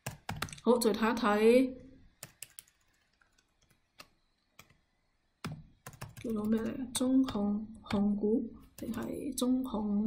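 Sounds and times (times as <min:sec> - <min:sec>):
computer keyboard keystrokes: 0:00.0 - 0:00.6, 0:02.2 - 0:04.8, 0:05.4 - 0:08.1.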